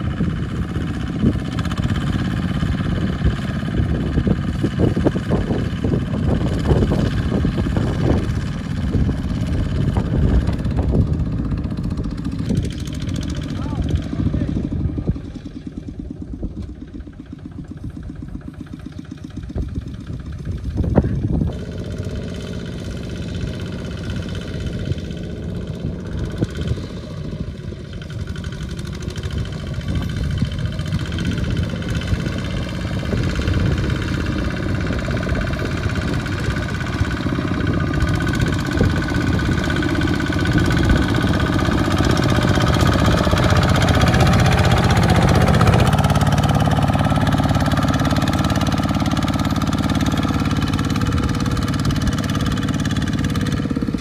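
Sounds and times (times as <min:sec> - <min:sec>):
diesel engine chugging under load: 0:00.0 - 0:54.0.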